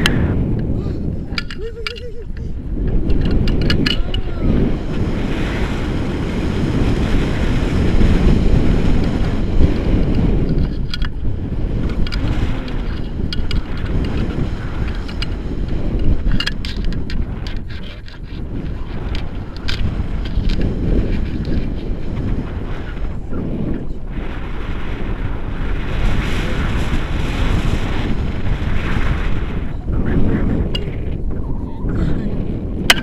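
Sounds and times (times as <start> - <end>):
wind rushing on microphone: 0.0 - 33.0.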